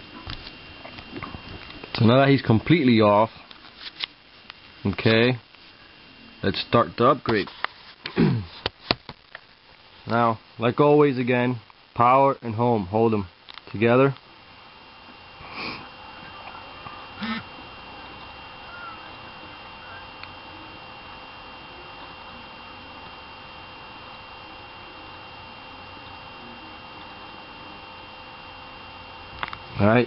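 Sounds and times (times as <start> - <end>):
faint electronic whine: 0.0 - 30.0
low background hiss: 8.7 - 27.8.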